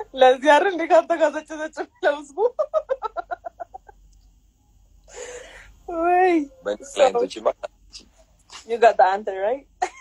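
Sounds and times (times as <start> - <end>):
woman laughing: 1.8 - 4.0.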